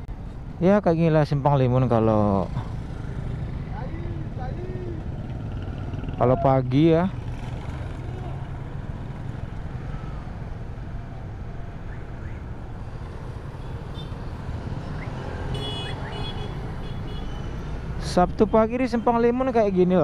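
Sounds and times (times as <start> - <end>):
street noise: 0.0 - 20.0
motorcycle engine rumble: 2.5 - 17.2.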